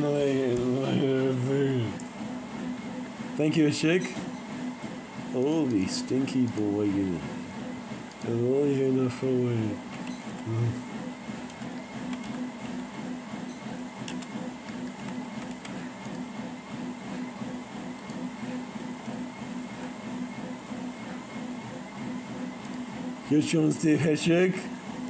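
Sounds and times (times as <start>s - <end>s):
low pulsing machine hum: 0.0s - 25.0s.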